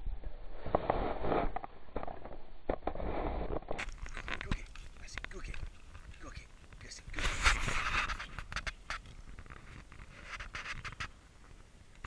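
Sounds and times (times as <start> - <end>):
wooden stick cracking and knocking: 3.6 - 11.1
dogs scuffling: 3.8 - 11.1.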